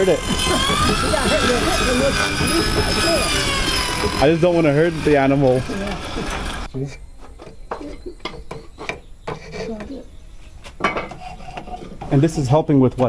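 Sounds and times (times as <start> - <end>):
saw rig running: 0.0 - 6.7.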